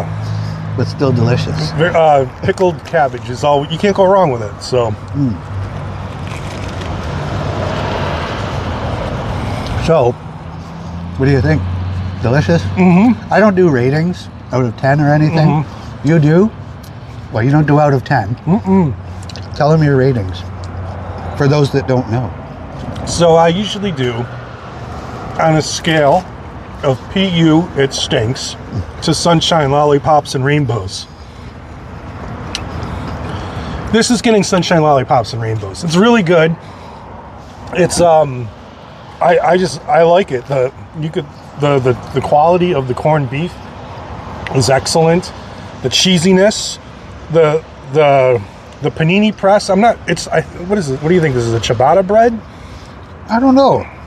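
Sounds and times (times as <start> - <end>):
road vehicle passing: 0.0 - 54.0
car passing close by: 6.6 - 13.6.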